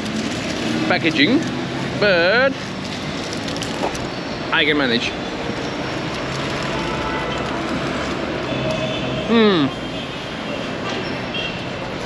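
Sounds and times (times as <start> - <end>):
city traffic hum: 0.0 - 12.0.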